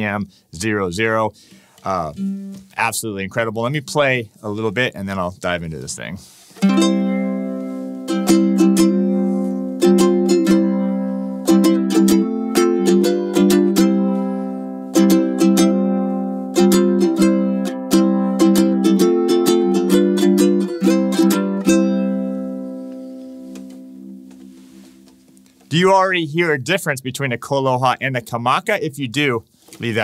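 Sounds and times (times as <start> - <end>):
ukulele strummed chords: 1.8 - 2.9, 6.6 - 25.9.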